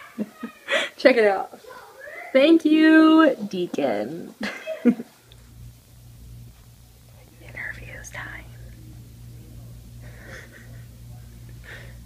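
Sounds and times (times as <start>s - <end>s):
low room hum: 0.0s - 12.0s
person whispering: 7.3s - 8.7s.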